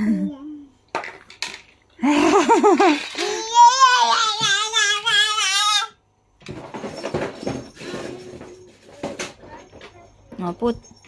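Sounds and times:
rustling and light knocks: 0:06.4 - 0:11.0.

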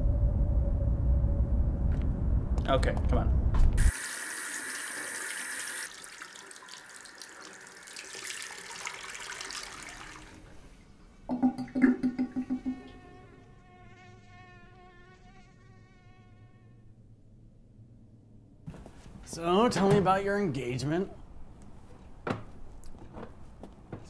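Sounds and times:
wavering drone: 0:00.0 - 0:02.6
low pulses: 0:00.0 - 0:03.8
running tap water: 0:03.8 - 0:10.7, 0:11.3 - 0:13.0
beer glugging from bottle: 0:11.3 - 0:13.0.

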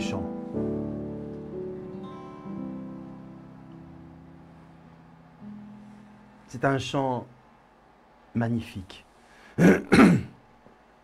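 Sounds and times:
man clearing his throat: 0:09.6 - 0:10.4.

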